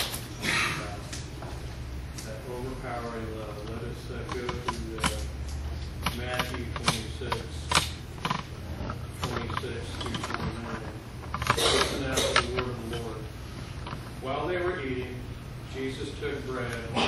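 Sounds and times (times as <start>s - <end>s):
steady low hum: 0.0s - 17.0s
small clicks and knocks: 3.6s - 13.1s.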